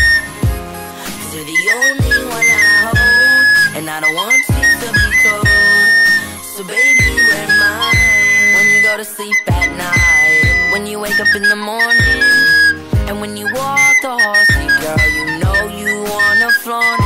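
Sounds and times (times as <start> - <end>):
pop backing track with drum beat: 0.0 - 17.0
recorder melody: 0.0 - 17.0.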